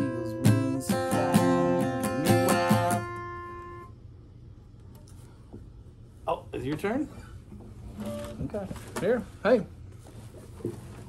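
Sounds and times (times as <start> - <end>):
acoustic guitar chords strummed: 0.0 - 3.9.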